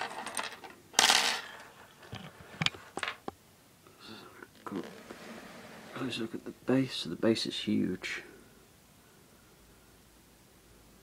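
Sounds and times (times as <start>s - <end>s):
loud scrape: 4.6s - 6.4s.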